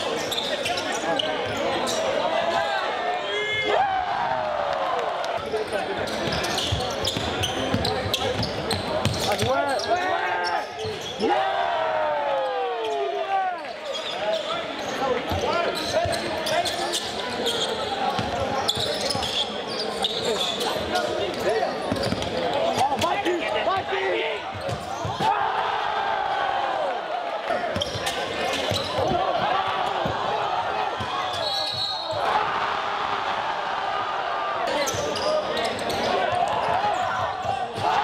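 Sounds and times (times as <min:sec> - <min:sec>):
crowd talking and shouting: 0:00.0 - 0:38.0
basketball bouncing on court: 0:06.2 - 0:09.6, 0:24.5 - 0:25.2, 0:27.7 - 0:30.3.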